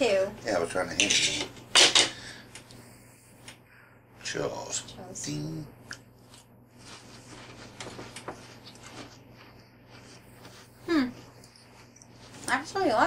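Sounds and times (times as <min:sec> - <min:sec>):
quiet chewing: 0:05.8 - 0:12.7
person humming hmm: 0:10.8 - 0:11.2.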